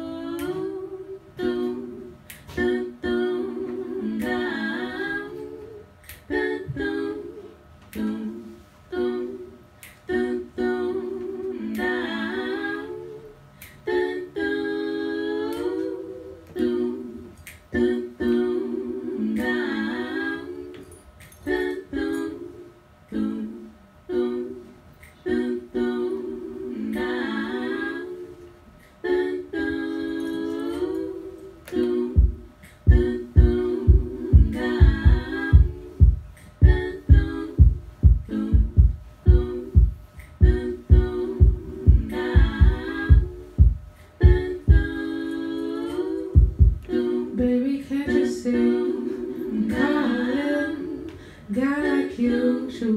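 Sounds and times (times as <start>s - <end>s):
women singing a cappella: 0.0s - 52.9s
beatboxed kick-drum thumps: 32.1s - 45.0s, 46.4s - 47.0s.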